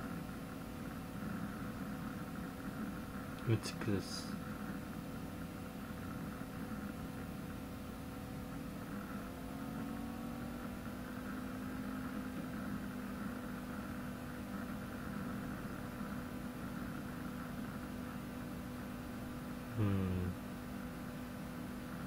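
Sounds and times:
car engine running: 0:00.0 - 0:20.3
steady hum: 0:00.0 - 0:22.0.

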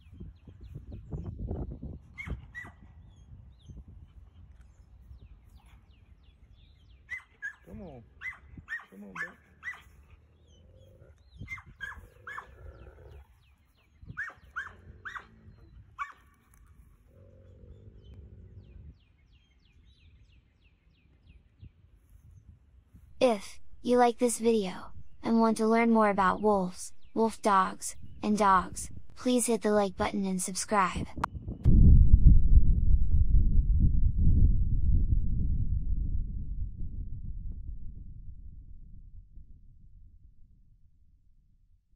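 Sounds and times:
dogs whining yips: 0:02.2 - 0:02.8, 0:07.1 - 0:09.9, 0:11.4 - 0:12.5, 0:14.2 - 0:15.3
dogs growling: 0:10.2 - 0:11.4, 0:12.0 - 0:13.3, 0:17.1 - 0:18.8
deep explosion rumble: 0:31.1 - 0:41.0.

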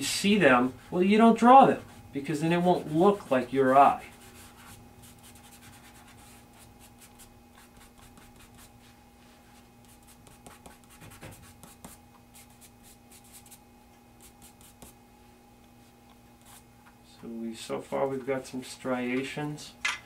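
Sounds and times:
faint steady hum: 0:00.0 - 0:20.0
fingertips rubbing charcoal on paper: 0:00.7 - 0:08.9, 0:09.8 - 0:13.6, 0:14.2 - 0:15.0.

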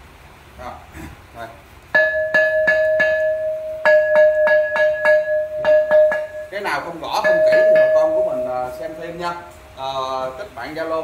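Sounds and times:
stick tapping porcelain bowl rim: 0:02.0 - 0:06.6, 0:07.2 - 0:09.6.

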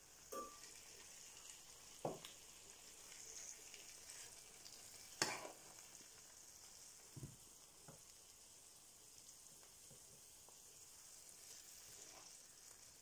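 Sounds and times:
faint sizzle from pan: 0:00.0 - 0:13.0
spoon clinking on plate: 0:00.3 - 0:00.6.

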